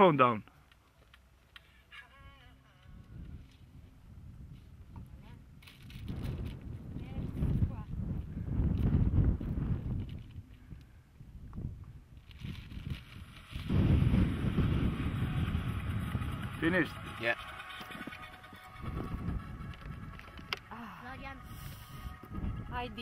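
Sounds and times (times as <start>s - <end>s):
wind buffeting microphone: 3.0s - 23.0s.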